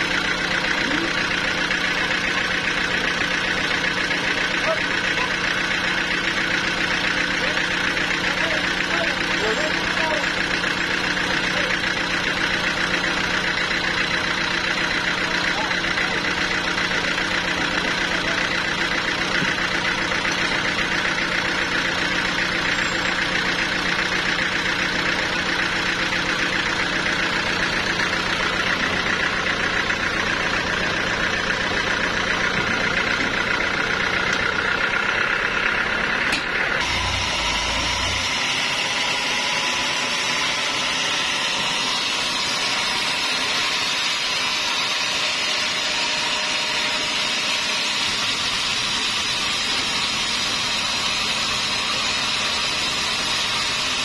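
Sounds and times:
sawmill engine running: 0.0s - 54.0s.

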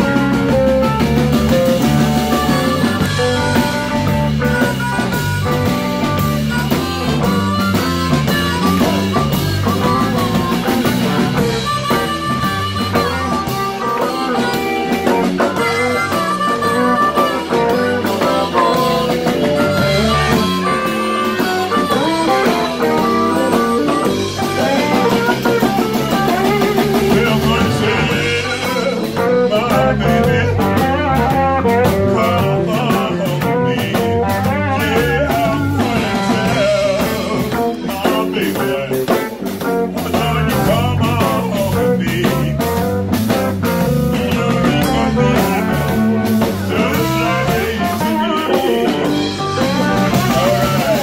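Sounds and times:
blues band playing: 0.0s - 51.0s
harmonica: 0.0s - 51.0s.

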